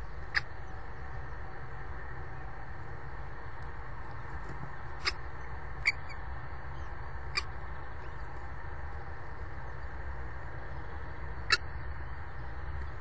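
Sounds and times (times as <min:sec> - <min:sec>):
steady low hum: 0:00.0 - 0:13.0
kestrel high peeps: 0:04.9 - 0:08.3, 0:11.4 - 0:11.8.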